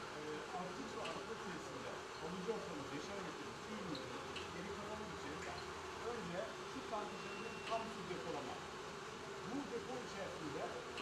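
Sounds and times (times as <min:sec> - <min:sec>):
man talking: 0:00.2 - 0:08.6, 0:09.4 - 0:11.0.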